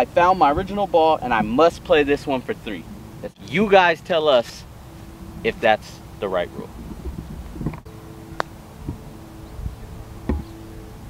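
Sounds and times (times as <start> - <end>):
faint steady hum: 0.0 - 11.0
golf club striking ball: 7.6 - 9.1.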